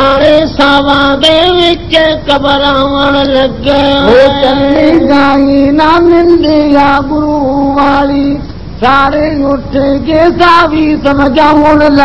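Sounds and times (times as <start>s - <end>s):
men singing high sustained notes: 0.0s - 12.0s.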